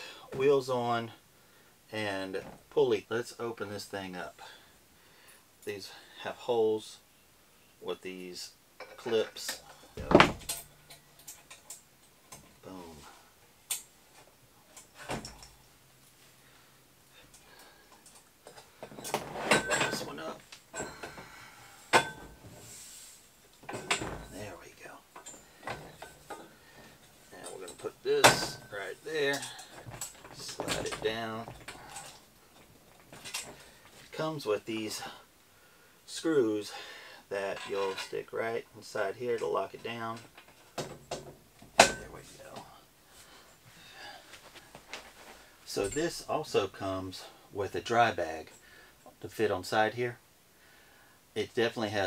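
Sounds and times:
metal clanking on metal: 8.8s - 12.5s, 18.5s - 22.6s, 23.6s - 24.6s, 25.2s - 33.8s, 39.4s - 42.4s
quiet handling noise: 8.8s - 16.3s, 23.4s - 35.2s.

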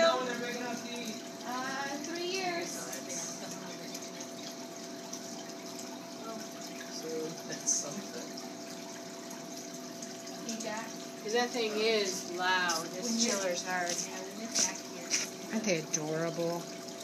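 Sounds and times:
water chiller humming: 0.0s - 17.0s
water running through tank: 0.0s - 17.0s.

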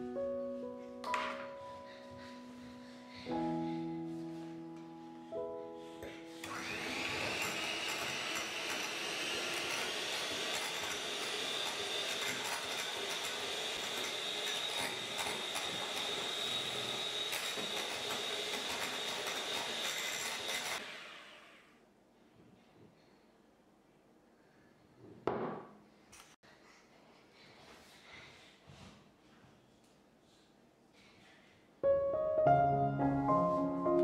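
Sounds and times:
electric hand mixer whining: 6.3s - 21.6s.

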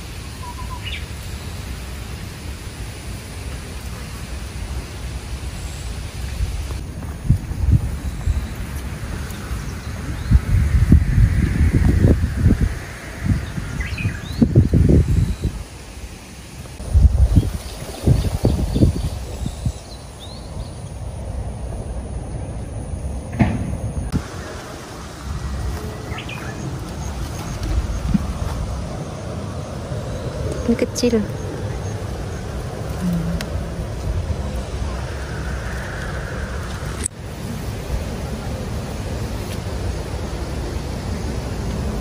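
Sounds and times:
wind gusts on microphone: 0.0s - 42.0s.

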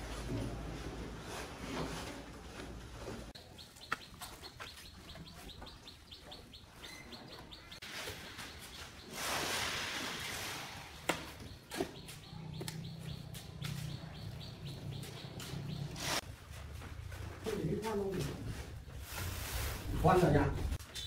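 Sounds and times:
small birds chirping: 3.4s - 16.2s
shovels scraping sand and cement: 7.8s - 11.1s, 15.9s - 16.3s.

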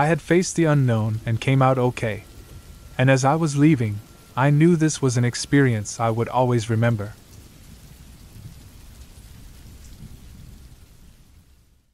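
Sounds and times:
dark ambient low rumble: 0.0s - 11.9s
faint hiss: 0.0s - 11.9s.

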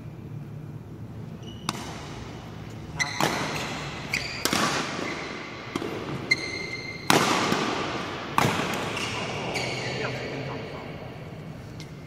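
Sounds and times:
shoes squeaking on court floor: 1.2s - 7.5s, 8.4s - 10.5s
rackets hitting shuttlecock: 1.6s - 9.8s.

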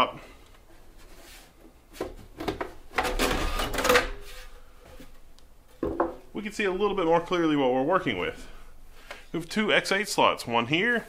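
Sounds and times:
metal cover scraping and rattling: 2.9s - 4.4s.

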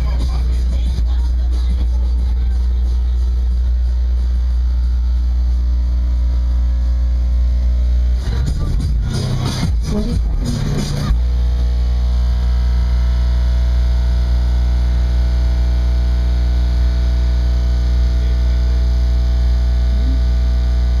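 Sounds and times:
very loud low bass tone: 0.0s - 21.0s.

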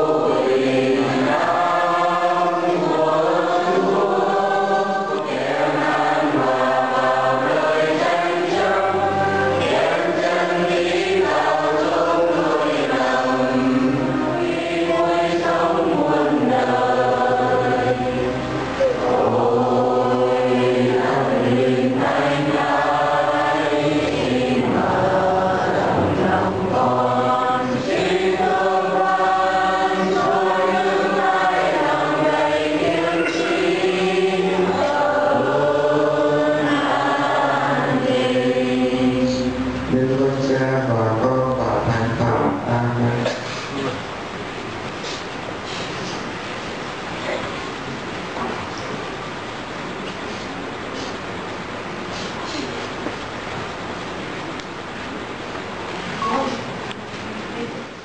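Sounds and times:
choir singing a hymn: 0.0s - 48.4s.

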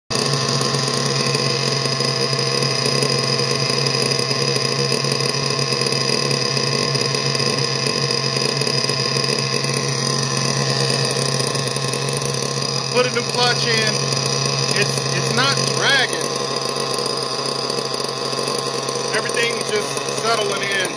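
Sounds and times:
model engine idling: 6.9s - 20.9s.

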